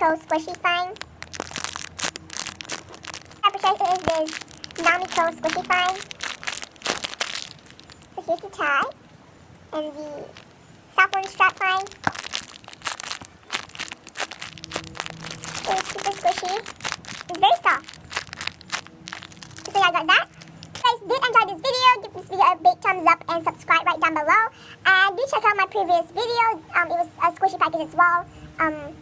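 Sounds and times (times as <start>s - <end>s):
plastic packaging crinkling: 0.0s - 9.0s, 10.2s - 21.0s.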